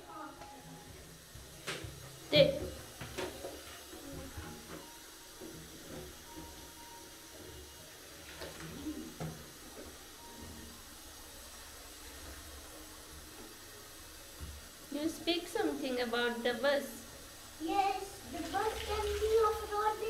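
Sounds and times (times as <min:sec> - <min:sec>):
bathwater sloshing: 0:17.0 - 0:20.0.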